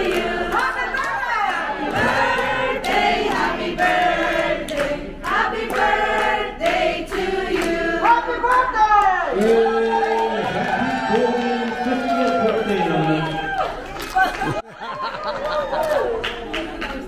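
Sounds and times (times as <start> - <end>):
group of people singing: 0.0 - 8.3, 9.4 - 10.7.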